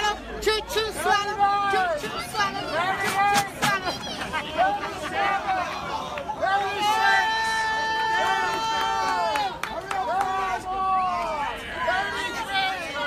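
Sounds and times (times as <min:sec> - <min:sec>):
crowd shouting encouragement: 0:00.0 - 0:13.0.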